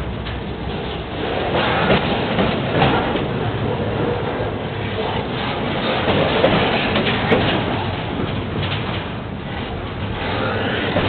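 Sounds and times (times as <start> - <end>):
train wheels rumbling on rails: 0.0 - 11.0
wheel clacks: 0.0 - 11.0.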